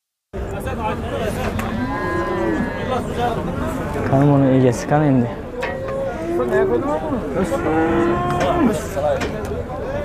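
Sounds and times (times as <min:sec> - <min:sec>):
bull mooing: 0:01.7 - 0:03.1, 0:07.3 - 0:08.8.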